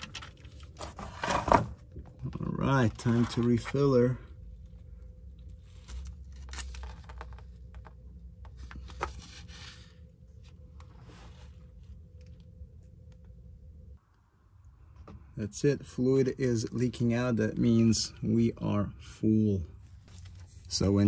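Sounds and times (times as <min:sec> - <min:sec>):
steady low hum: 0:00.0 - 0:21.0
plastic bottle crinkling and creaking: 0:05.6 - 0:09.2.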